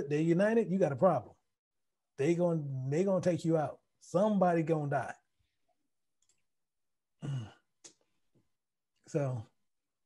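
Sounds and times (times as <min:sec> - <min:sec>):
man speaking: 0:00.0 - 0:01.4, 0:02.2 - 0:05.3, 0:09.0 - 0:09.6.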